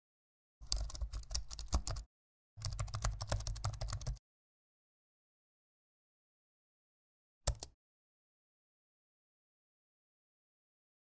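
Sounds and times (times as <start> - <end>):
rapid keyboard typing clicks: 0.6 - 4.2, 7.5 - 7.8.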